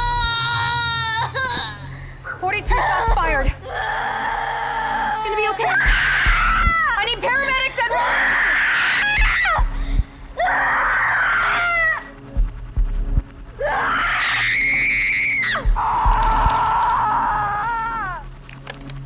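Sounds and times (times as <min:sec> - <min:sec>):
film music: 0:00.0 - 0:19.0
person screaming: 0:13.6 - 0:18.2.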